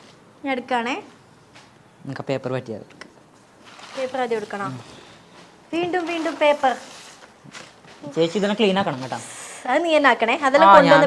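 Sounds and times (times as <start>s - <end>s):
packing paper and plastic crinkling: 3.6s - 9.3s
person speaking: 10.6s - 11.0s.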